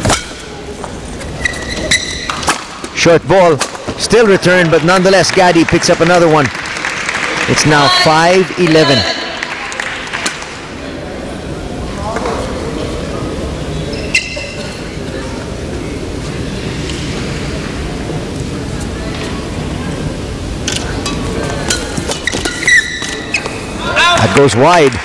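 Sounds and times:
shoe squeaks on court: 0:01.3 - 0:02.6, 0:13.8 - 0:14.8, 0:21.7 - 0:23.8
crowd murmur: 0:06.5 - 0:25.0.

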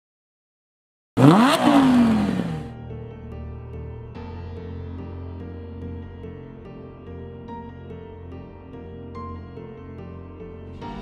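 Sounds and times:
car engine revving: 0:01.2 - 0:02.7.

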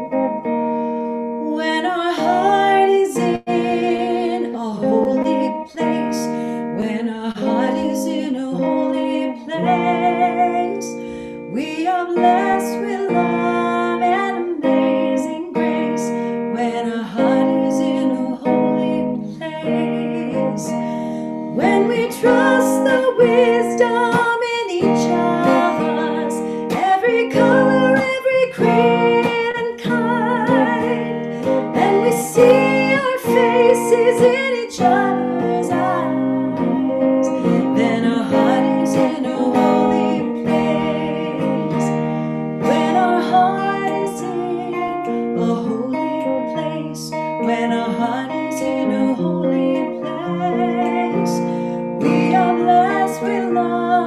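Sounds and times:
guitar strummed and plucked: 0:00.0 - 0:54.0
woman singing a hymn: 0:01.4 - 0:54.0.

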